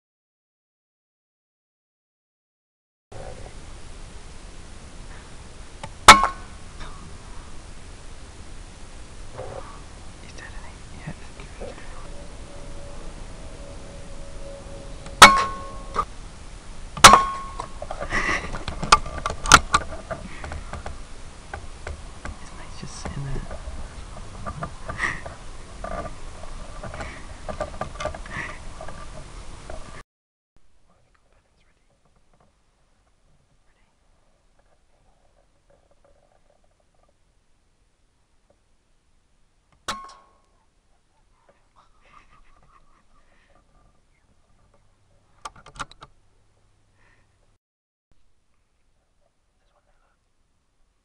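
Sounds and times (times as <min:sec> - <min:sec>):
person whispering: 0:10.2 - 0:12.2, 0:22.4 - 0:23.5, 0:30.8 - 0:32.0, 0:33.6 - 0:34.0, 0:49.1 - 0:50.2.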